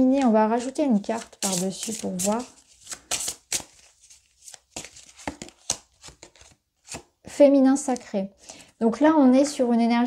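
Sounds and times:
cards being shuffled: 1.0 - 7.1.

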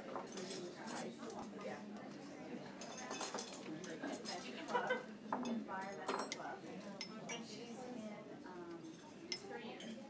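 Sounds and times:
cutlery and dishes clinking: 0.0 - 1.7, 2.8 - 7.5, 8.8 - 10.0.

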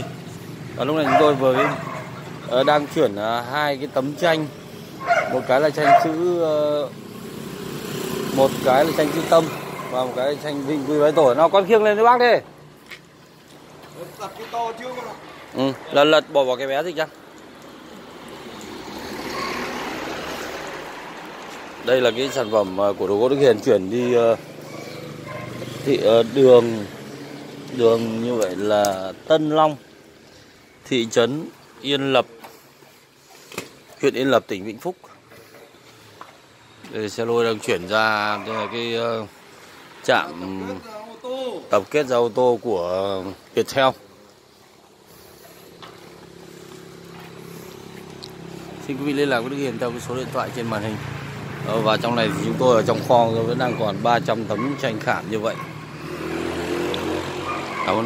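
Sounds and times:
vehicle passing: 0.0 - 58.0.

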